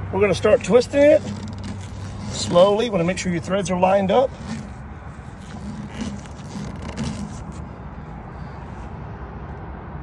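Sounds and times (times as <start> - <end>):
motor vehicle rumbling: 0.0 - 10.0
faint metal scraping: 0.4 - 7.7.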